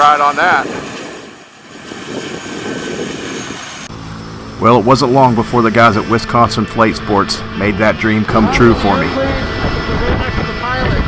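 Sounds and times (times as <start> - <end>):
turboprop engine and propeller: 0.0 - 11.0.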